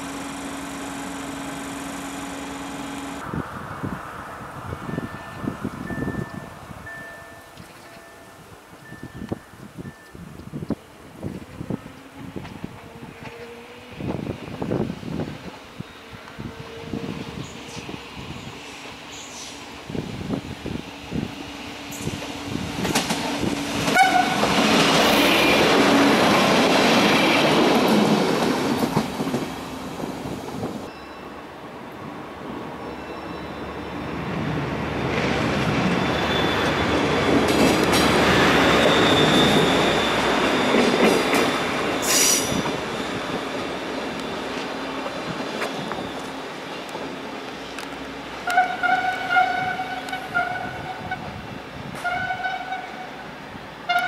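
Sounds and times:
diesel railcar passing: 0.0s - 54.0s
train wheel squeal: 30.9s - 31.4s, 32.8s - 34.4s, 35.0s - 44.6s, 45.5s - 46.8s.

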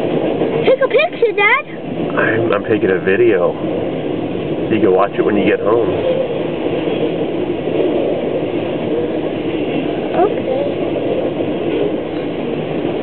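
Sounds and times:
freight train wheels rumbling: 0.0s - 13.0s.

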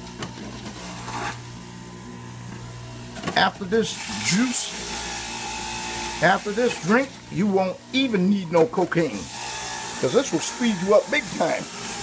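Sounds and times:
juicer grinding ginger: 0.0s - 12.0s
juicer motor humming: 0.0s - 12.0s.

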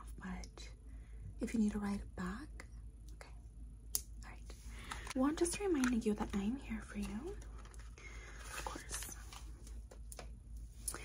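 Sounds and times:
breath: 4.6s - 5.2s, 8.0s - 8.7s
person whispering: 8.4s - 9.4s.

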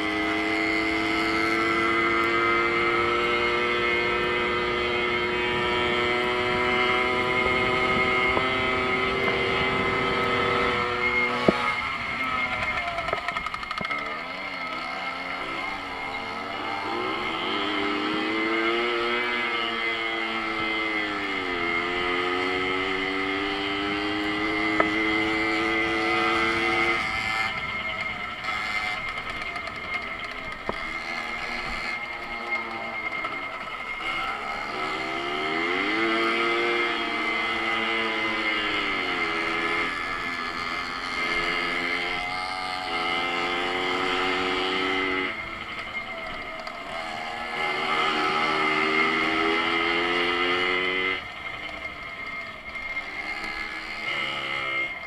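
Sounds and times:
moped two-stroke engine revving: 0.0s - 55.0s
steady high whine: 0.0s - 55.0s.

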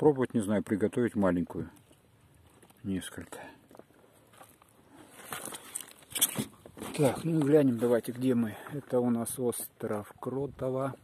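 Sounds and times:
barnacle shells scraping and clicking: 3.7s - 7.0s.

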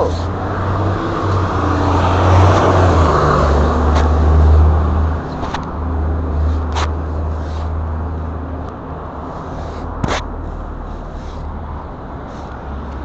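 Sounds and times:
vehicle passing: 0.0s - 13.0s
camera rubbing on clothing: 2.5s - 13.0s.

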